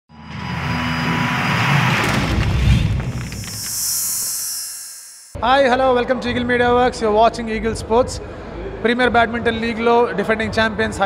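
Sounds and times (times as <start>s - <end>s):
rushing rumbling swell of noise: 2.4s - 5.4s.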